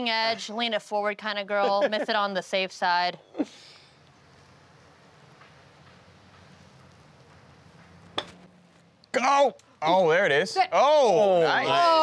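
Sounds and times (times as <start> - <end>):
golf club striking ball: 5.4 - 8.6.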